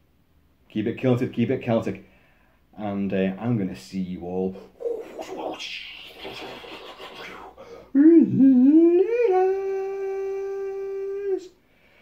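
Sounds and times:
man howling: 7.3 - 11.5.

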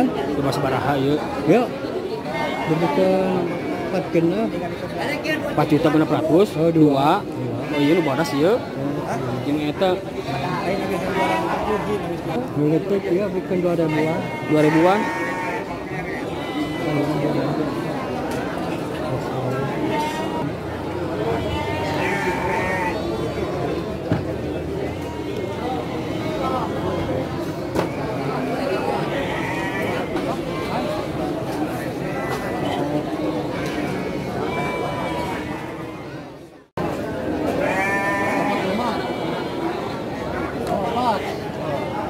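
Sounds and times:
market chatter: 0.0 - 42.0
people talking: 0.0 - 42.0
sheep bleating: 7.6 - 8.5, 13.8 - 17.2, 21.4 - 23.2, 29.1 - 30.1, 33.6 - 36.0, 37.6 - 39.7.

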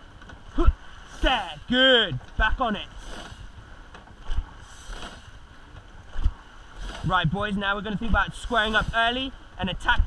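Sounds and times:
rushing water: 0.0 - 10.0
wind on microphone: 0.0 - 10.0.

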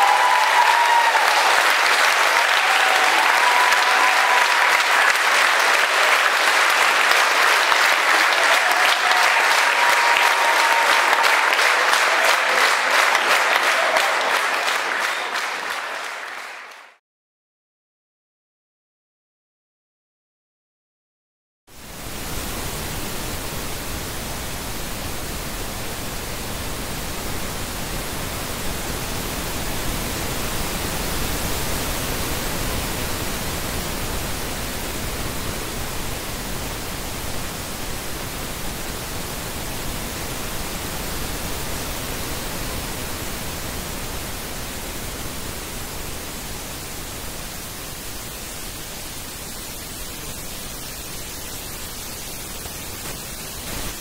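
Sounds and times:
pink noise test hiss: 0.0 - 15.1, 21.7 - 54.0.

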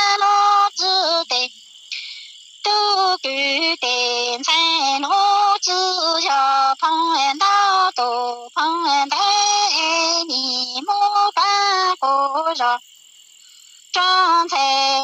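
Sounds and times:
woman singing unaccompanied: 0.0 - 12.9, 13.9 - 15.0.

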